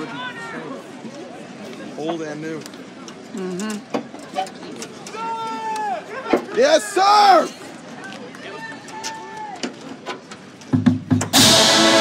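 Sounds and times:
drum and bugle corps music: 0:10.7 - 0:12.0
brass chord: 0:11.3 - 0:12.0.

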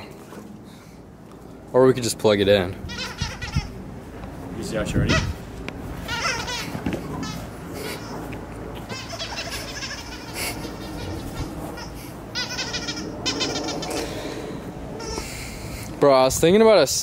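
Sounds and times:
dog whining: 0:02.9 - 0:03.8, 0:06.0 - 0:08.2, 0:08.8 - 0:14.3.

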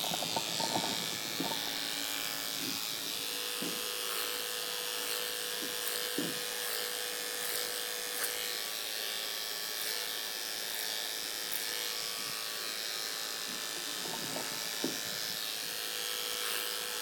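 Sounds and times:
electric hair clipper humming: 0:00.0 - 0:17.0.

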